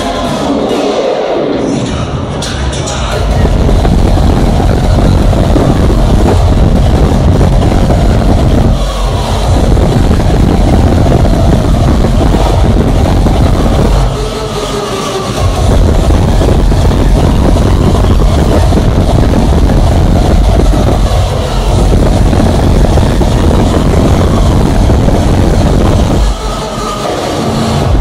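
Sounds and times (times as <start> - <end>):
heavy bass: 0.0 - 28.0
loud hardstyle music: 0.0 - 28.0.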